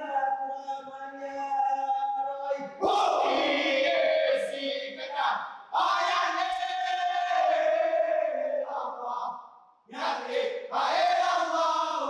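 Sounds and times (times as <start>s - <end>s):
voices chanting in unison: 0.0s - 12.0s.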